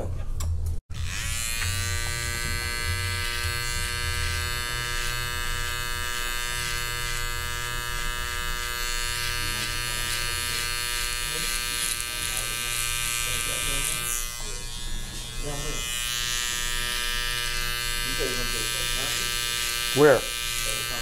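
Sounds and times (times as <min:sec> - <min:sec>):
beard trimmer buzzing: 0:00.9 - 0:21.0.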